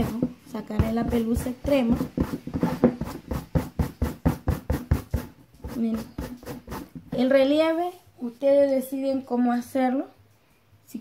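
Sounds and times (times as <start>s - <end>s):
brush scrubbing wool pile: 0.0s - 7.3s.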